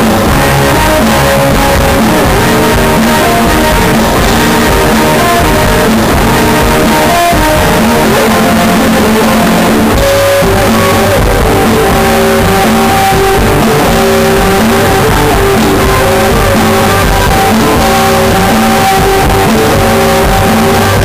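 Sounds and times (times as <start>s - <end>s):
electric guitar: 0.0s - 21.0s
live rock band playing loudly: 0.0s - 21.0s.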